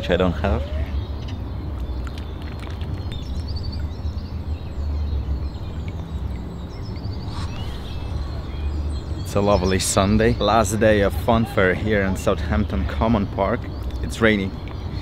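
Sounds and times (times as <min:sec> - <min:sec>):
steady low rumble: 0:01.0 - 0:15.0
faint bird chirps: 0:03.0 - 0:12.2.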